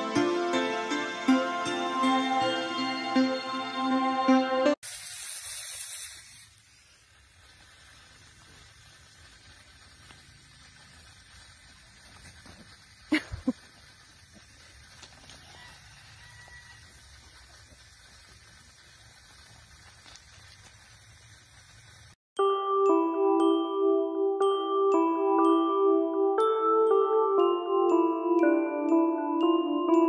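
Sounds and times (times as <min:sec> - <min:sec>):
mallet percussion tune: 0:00.0 - 0:04.7, 0:22.4 - 0:30.0
outdoor background noise: 0:04.8 - 0:22.2.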